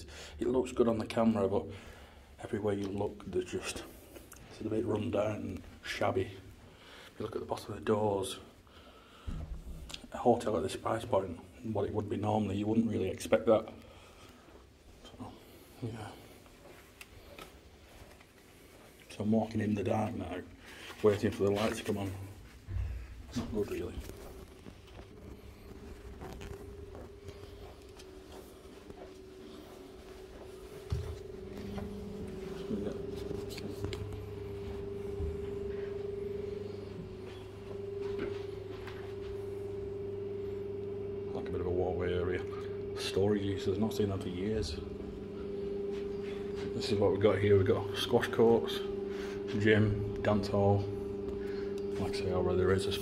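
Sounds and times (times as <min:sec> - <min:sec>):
ventilation hum: 0:00.0 - 0:53.0
footsteps on carpet: 0:14.1 - 0:19.1, 0:20.5 - 0:39.7, 0:44.8 - 0:47.4.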